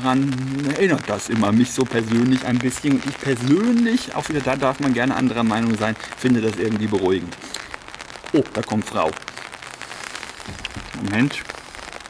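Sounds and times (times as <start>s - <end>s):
rain pattering on an umbrella: 0.0s - 12.0s.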